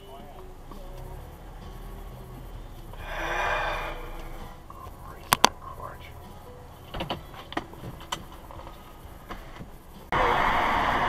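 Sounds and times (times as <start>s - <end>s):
car cabin rumble: 0.0s - 10.1s
rush of noise: 1.2s - 6.3s, 8.4s - 11.0s.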